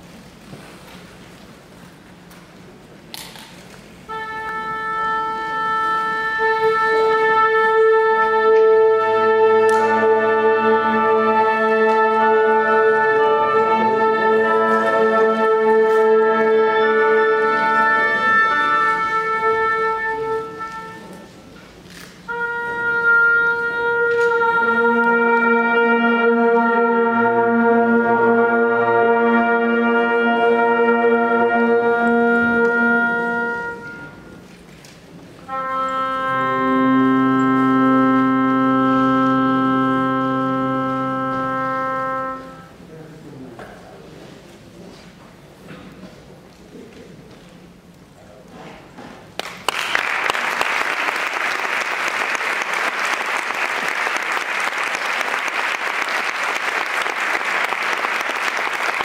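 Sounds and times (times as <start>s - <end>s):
wind band playing sustained chords: 4.0s - 43.4s, 49.9s - 59.0s.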